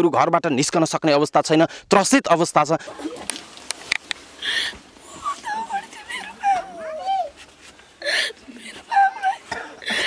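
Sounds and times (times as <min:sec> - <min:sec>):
sharp gasping breath: 0:04.4 - 0:04.8, 0:07.8 - 0:08.5, 0:09.8 - 0:10.0
woman wailing and sobbing: 0:04.4 - 0:10.0.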